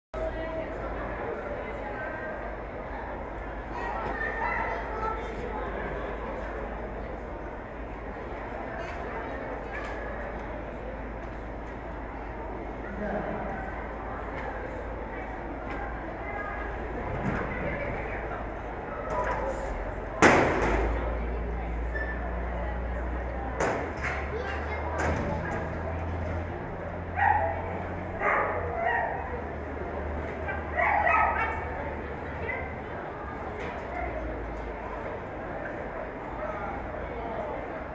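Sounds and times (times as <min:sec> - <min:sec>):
arena background rumble and hiss: 0:00.2 - 0:37.9
dog barking: 0:27.2 - 0:27.6, 0:28.2 - 0:29.3, 0:30.5 - 0:31.7.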